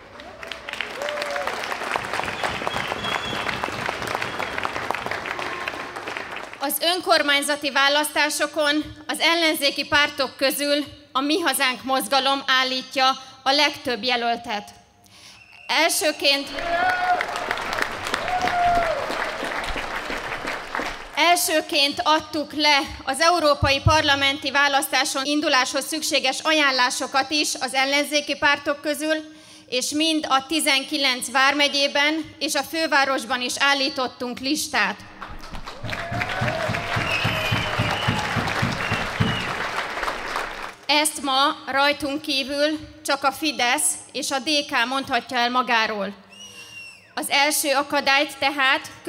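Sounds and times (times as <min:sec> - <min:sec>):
crowd applauding: 0:00.0 - 0:06.6, 0:16.4 - 0:21.2, 0:35.2 - 0:40.8.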